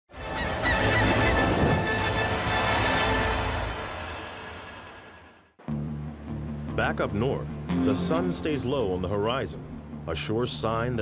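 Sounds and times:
birds calling: 0:00.2 - 0:01.6.

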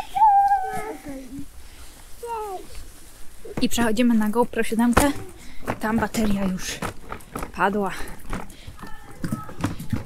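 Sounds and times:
child calling out: 0:00.0 - 0:01.3, 0:02.2 - 0:02.7.

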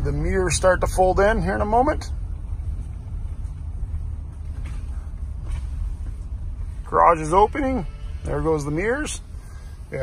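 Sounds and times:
road and tyre rumble in car: 0:00.0 - 0:10.0.

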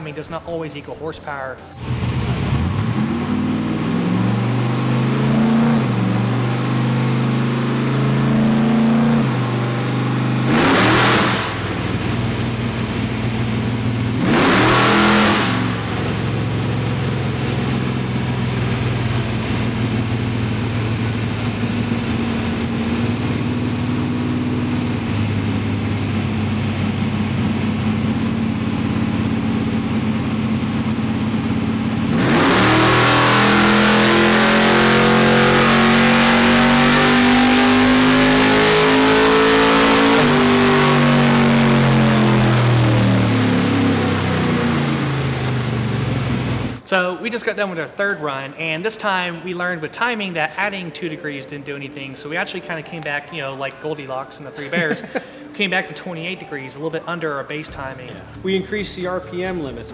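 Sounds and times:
race car engine revving: 0:00.0 - 0:46.9.

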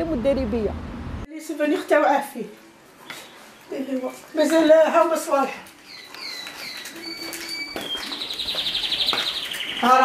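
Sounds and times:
songbird chirping and trilling: 0:03.0 - 0:10.0.

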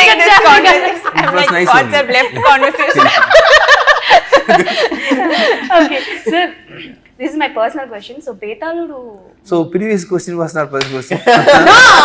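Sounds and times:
people laughing heartily: 0:02.9 - 0:06.5, 0:11.2 - 0:12.0.

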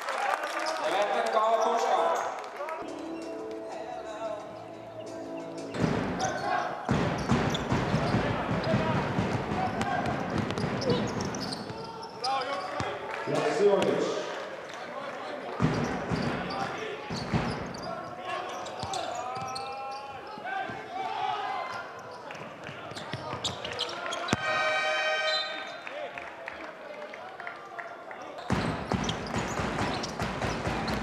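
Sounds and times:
players and crowd voices: 0:00.0 - 0:31.0
shoe squeals: 0:05.4 - 0:13.0, 0:15.6 - 0:25.9, 0:28.4 - 0:31.0
basketball bouncing on hardwood: 0:06.9 - 0:11.5.

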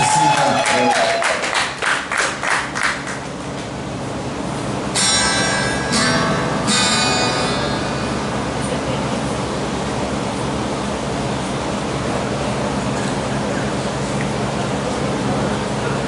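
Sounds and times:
amplifier hiss and hum: 0:03.2 - 0:16.0
guitar chords strummed: 0:04.8 - 0:09.2.

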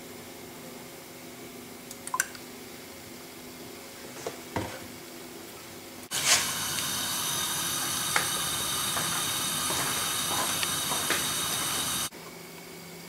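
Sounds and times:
gas burner hissing: 0:06.1 - 0:12.1.

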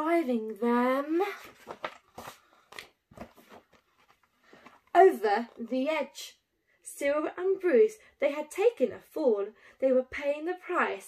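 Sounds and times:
book pages turning: 0:01.3 - 0:05.6.

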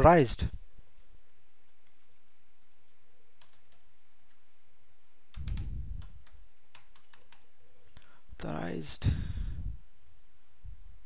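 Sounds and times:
keyboard typing: 0:00.9 - 0:04.4, 0:05.3 - 0:07.5.

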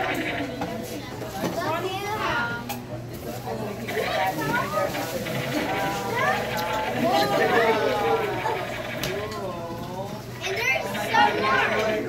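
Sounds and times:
children and adults talking: 0:00.0 - 0:12.0.

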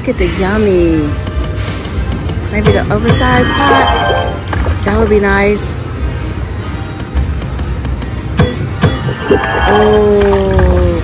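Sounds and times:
slot machine game music: 0:02.6 - 0:05.0, 0:08.4 - 0:10.9.

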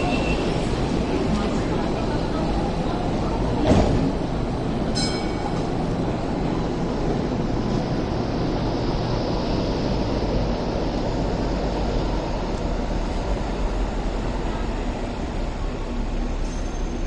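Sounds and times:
high whine of moving tram: 0:00.0 - 0:17.0
tram doors closing: 0:00.0 - 0:17.0
brief chime: 0:05.0 - 0:05.7.

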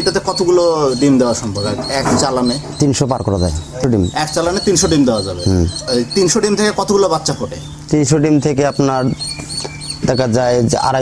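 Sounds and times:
high bird chirps: 0:00.0 - 0:11.0
men talking: 0:00.0 - 0:11.0.

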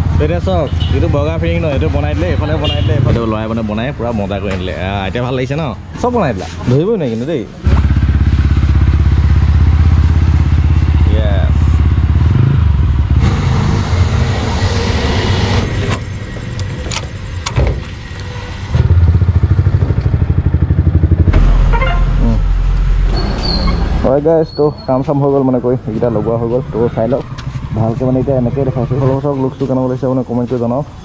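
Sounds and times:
motorcycle engine running loudly: 0:07.6 - 0:15.9, 0:18.7 - 0:22.6.

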